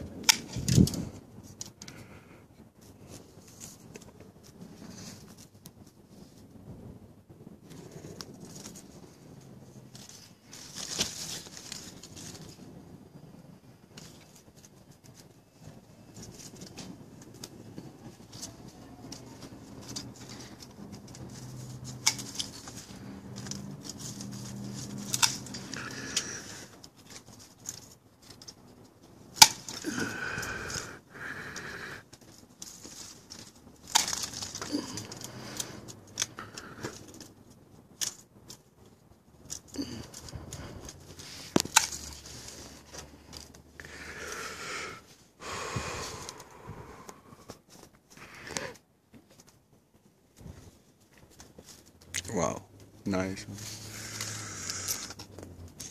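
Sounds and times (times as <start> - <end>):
rustling leaves and branches: 0.0 - 55.9
pruning shears snipping: 19.9 - 28.4, 29.4 - 30.8.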